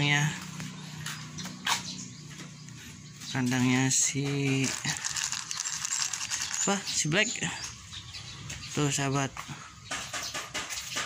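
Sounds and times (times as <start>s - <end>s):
kibble clattering in plastic cup: 4.0s - 7.0s.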